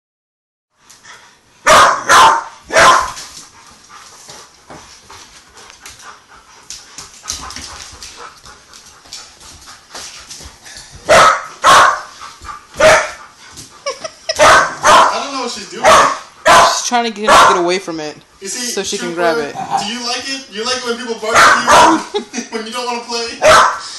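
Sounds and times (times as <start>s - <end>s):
puppy play-barking: 1.6s - 3.2s, 11.1s - 13.2s, 14.3s - 17.7s, 21.3s - 22.2s, 23.4s - 23.8s.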